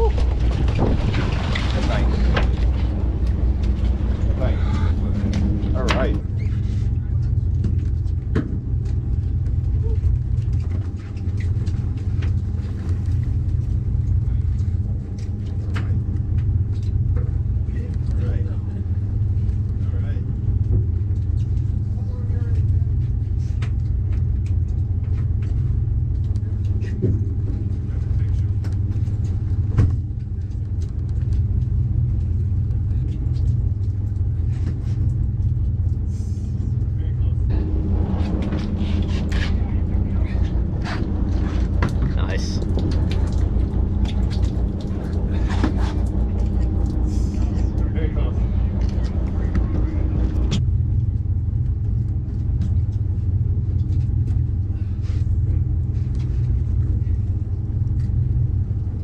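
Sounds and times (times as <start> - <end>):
boat engine running: 0.0 - 59.0.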